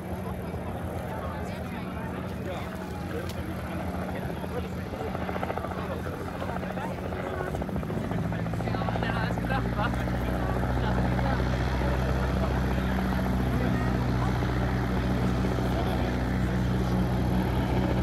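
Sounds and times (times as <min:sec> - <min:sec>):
helicopter engine drone: 0:00.0 - 0:18.0
helicopter rotor rumble: 0:00.0 - 0:18.0.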